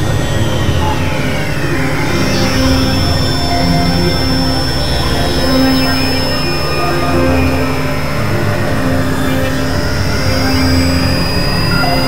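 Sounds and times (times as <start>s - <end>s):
synthesizer drone music: 0.0s - 12.0s.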